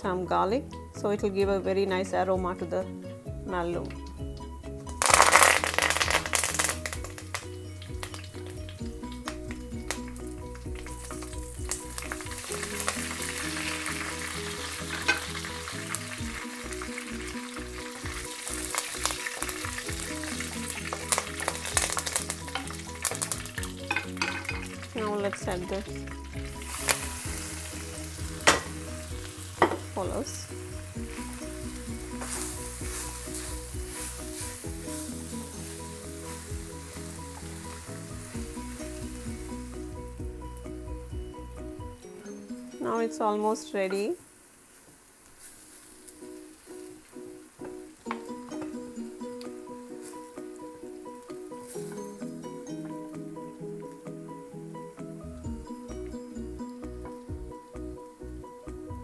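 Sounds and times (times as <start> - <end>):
spices sizzling in hot oil: 0.1 - 59.0
spoon scraping and knocking pan: 12.3 - 15.5, 20.8 - 24.8, 28.2 - 30.0, 31.0 - 39.6.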